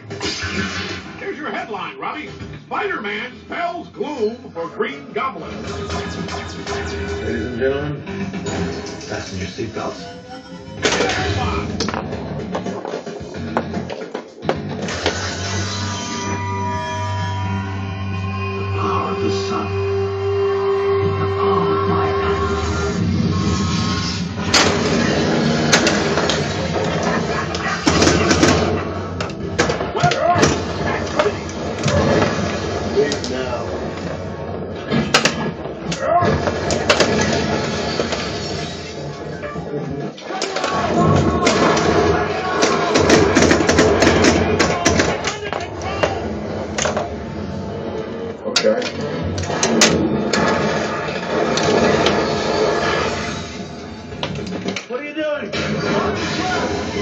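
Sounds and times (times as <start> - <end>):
pinball game music: 24.5 - 38.2.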